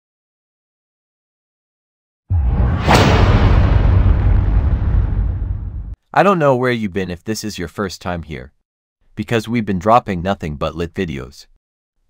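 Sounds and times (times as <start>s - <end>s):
deep explosion tail: 2.3s - 6.0s.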